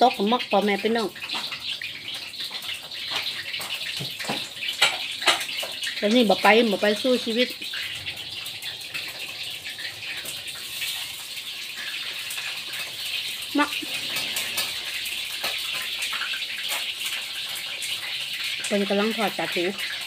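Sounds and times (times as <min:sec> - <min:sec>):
heavy rain on a metal roof: 0:03.1 - 0:19.8.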